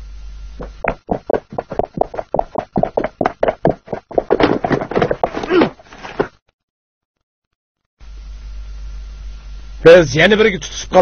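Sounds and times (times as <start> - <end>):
horse hooves galloping: 0.6 - 5.8.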